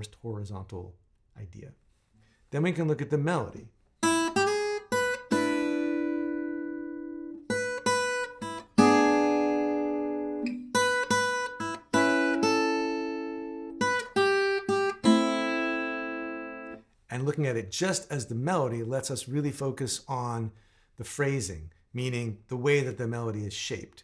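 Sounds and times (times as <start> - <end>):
fingerstyle acoustic guitar blues: 4.0 - 16.8.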